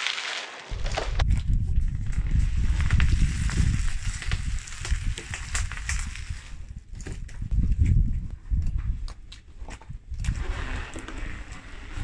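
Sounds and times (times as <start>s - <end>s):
plastic balls cracking under tyre: 0.0s - 7.8s
low rumble of rolling tyre: 9.9s - 12.0s.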